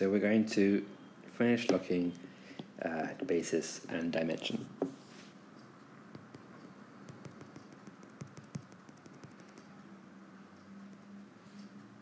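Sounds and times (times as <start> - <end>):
fingers tapping on glass screen: 6.1 - 9.8, 10.8 - 11.2.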